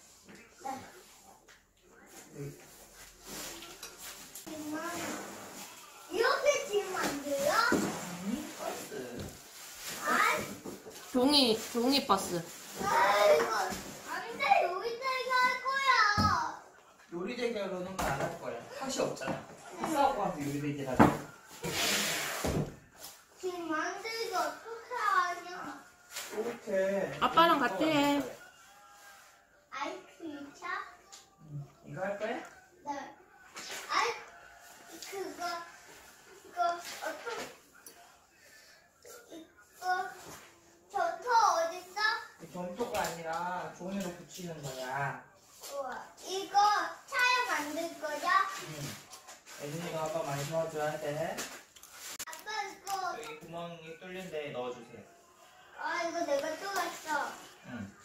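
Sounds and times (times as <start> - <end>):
cardboard sheet rustling: 2.7 - 15.9, 45.5 - 53.2
child's voice: 6.1 - 8.0, 10.0 - 10.6, 12.8 - 16.6, 23.4 - 25.8, 29.7 - 31.0, 33.8 - 34.3, 40.9 - 42.3, 45.7 - 48.6, 52.3 - 53.4, 55.8 - 57.4.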